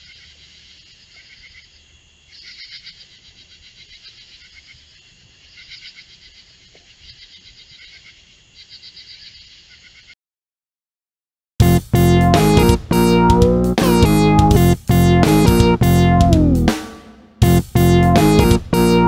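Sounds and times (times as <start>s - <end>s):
insects trilling: 0.0s - 10.2s
raspy pulsed insect calls: 0.0s - 10.2s.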